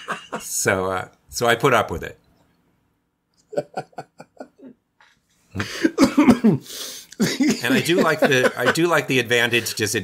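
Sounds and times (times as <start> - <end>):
man chuckling: 0.0 - 0.5, 3.4 - 4.8, 7.2 - 9.1
man coughing loudly: 5.6 - 8.7.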